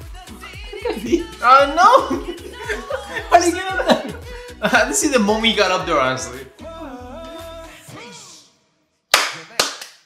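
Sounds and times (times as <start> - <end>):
sharp hand claps: 9.1 - 10.0.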